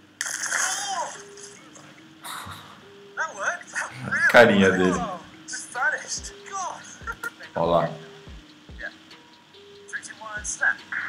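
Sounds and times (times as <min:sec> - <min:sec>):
glass plate shattering: 0:00.2 - 0:01.6
man shouting: 0:04.1 - 0:07.1.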